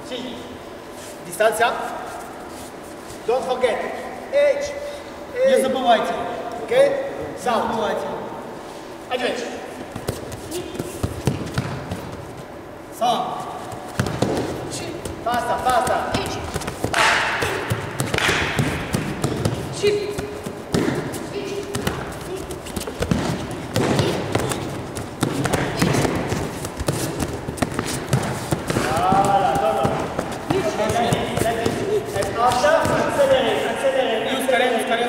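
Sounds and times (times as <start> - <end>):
barefoot steps and stamps on mats: 9.9 - 12.5, 13.5 - 33.5.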